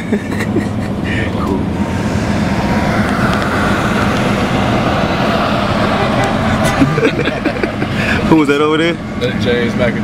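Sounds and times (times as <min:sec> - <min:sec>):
road and wind noise in car: 0:00.0 - 0:10.0.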